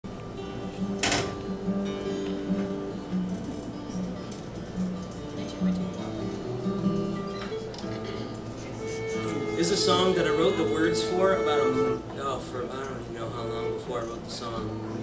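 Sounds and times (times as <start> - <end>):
acoustic guitar notes: 0.1 - 15.0
fiddle notes: 6.2 - 15.0
low talking: 8.4 - 15.0.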